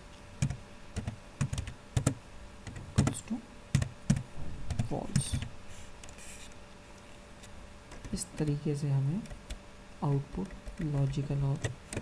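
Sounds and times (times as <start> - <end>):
computer keyboard typing: 0.4 - 5.5, 7.9 - 8.6, 9.2 - 12.0.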